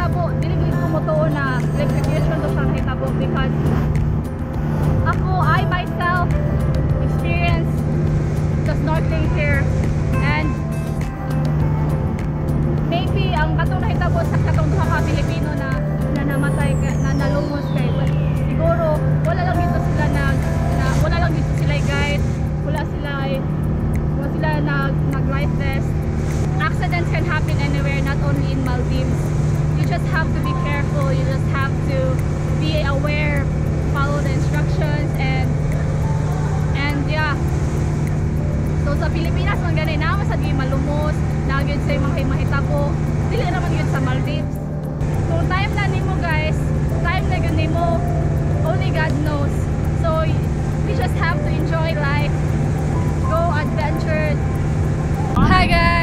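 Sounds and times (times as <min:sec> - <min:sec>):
woman talking: 0:00.0 - 0:03.8, 0:05.0 - 0:07.8, 0:08.6 - 0:10.6, 0:12.9 - 0:23.4, 0:24.2 - 0:25.9, 0:26.6 - 0:29.2, 0:29.8 - 0:35.6, 0:36.7 - 0:37.4, 0:38.8 - 0:44.6, 0:45.3 - 0:52.4, 0:53.3 - 0:54.4, 0:55.4 - 0:56.0
background music: 0:00.0 - 0:56.0
boat engine droning: 0:00.0 - 0:56.0.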